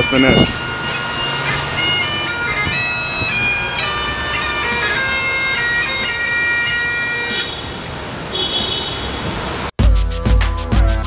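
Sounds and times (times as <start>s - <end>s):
noisy background: 0.0s - 6.5s
bagpipes playing: 0.0s - 8.4s.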